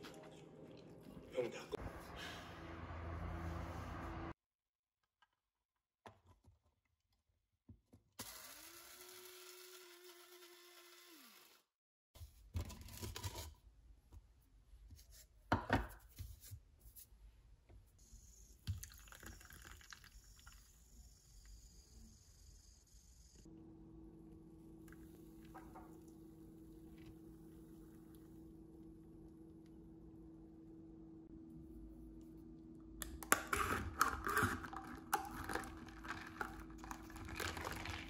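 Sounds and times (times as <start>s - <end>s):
electric coffee grinder running: 8.2s - 11.6s
low machine hum: 23.5s - 38.0s.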